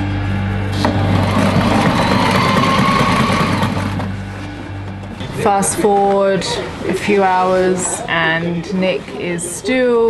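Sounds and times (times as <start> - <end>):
sewing machine running: 0.9 - 4.2.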